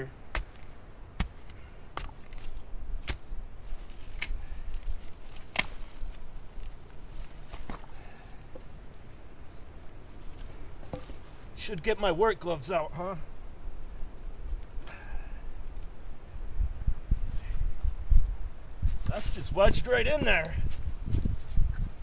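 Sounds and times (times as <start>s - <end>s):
dirt and stones scraping: 0.0s - 11.7s, 18.8s - 22.0s
digging stick knocking rocks: 0.3s - 3.3s, 4.0s - 5.9s.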